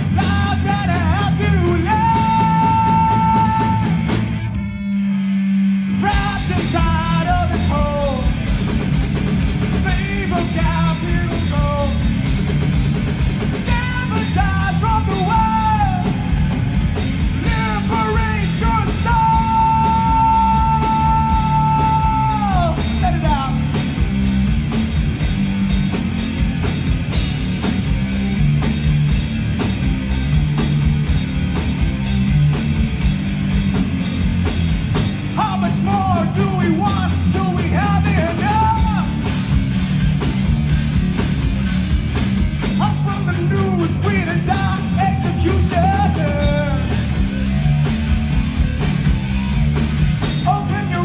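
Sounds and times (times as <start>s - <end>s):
man singing: 0.0s - 4.1s, 5.9s - 8.4s, 9.7s - 12.1s, 13.6s - 16.3s, 17.4s - 23.8s, 35.3s - 39.3s, 42.7s - 47.1s, 50.4s - 51.0s
rock band playing: 0.0s - 51.0s
person singing: 0.1s - 4.0s, 13.6s - 16.3s, 17.4s - 23.7s, 50.4s - 51.0s.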